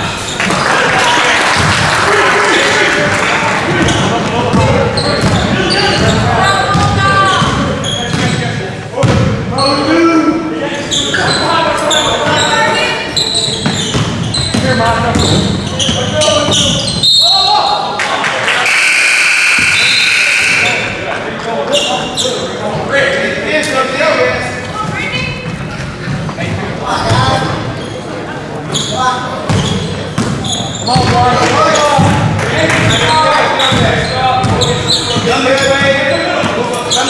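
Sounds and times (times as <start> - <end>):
voices echoing: 0.0 - 37.0
sneakers squeaking on a court: 3.7 - 10.0, 10.8 - 17.9, 21.7 - 22.6, 24.7 - 37.0
basketball bouncing: 3.8 - 8.4, 13.6 - 16.9, 29.5 - 31.3, 32.0 - 33.0, 33.6 - 35.8
basketball bouncing on hardwood floor: 3.9 - 8.3, 31.0 - 31.2.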